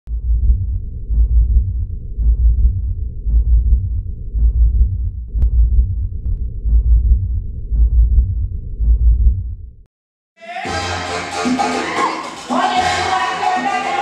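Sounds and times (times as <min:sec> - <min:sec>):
deep synthesized bass pulse: 0:00.1 - 0:09.8.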